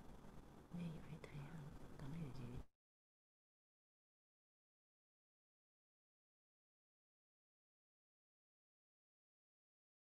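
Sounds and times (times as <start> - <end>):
background hum: 0.0 - 2.7.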